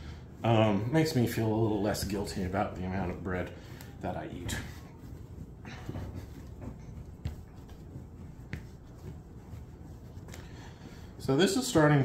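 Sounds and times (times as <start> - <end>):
dough being kneaded: 0.0 - 12.0.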